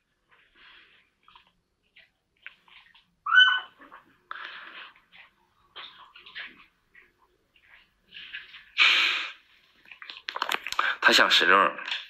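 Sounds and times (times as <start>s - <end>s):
dog whimpering: 3.3s - 3.8s.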